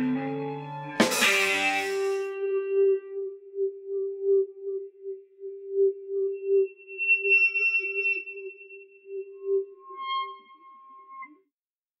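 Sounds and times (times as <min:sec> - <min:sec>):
band holding high note: 0:01.0 - 0:02.3.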